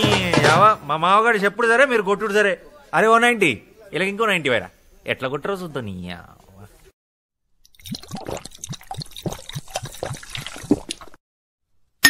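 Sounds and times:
percussion-heavy song passage: 0.0 - 0.8.

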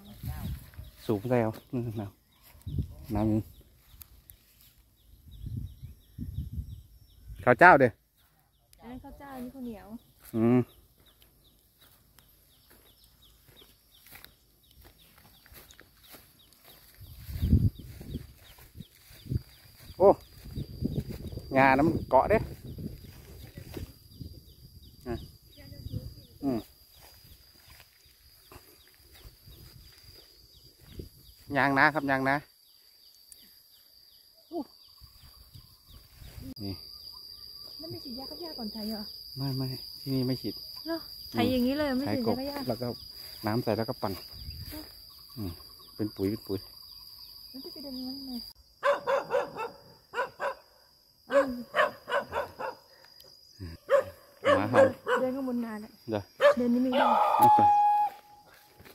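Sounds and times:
dog barking: 48.8 - 53.0, 53.8 - 55.4, 56.4 - 57.4.

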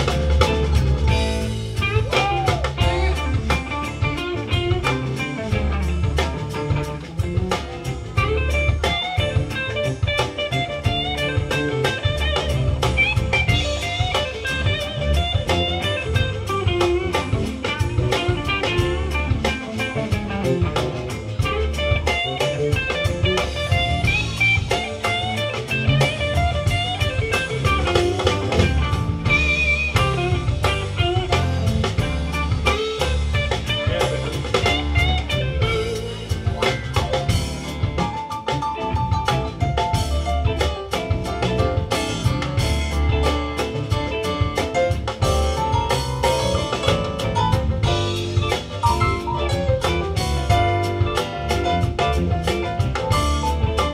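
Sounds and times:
drum kit steady beat: 0.0 - 53.9
electric guitar lines: 0.0 - 53.9.

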